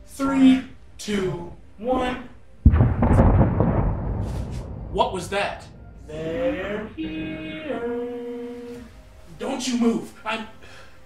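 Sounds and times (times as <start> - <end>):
explosion with low rumble: 2.6 - 6.3.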